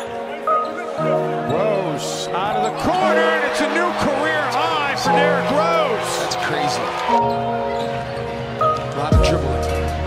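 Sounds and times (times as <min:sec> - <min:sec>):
arena crowd noise: 0:00.0 - 0:10.0
background music with held chords: 0:00.0 - 0:10.0.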